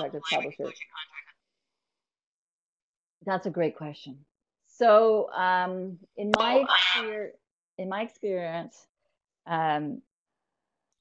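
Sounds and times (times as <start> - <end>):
person speaking: 0.0 - 1.3.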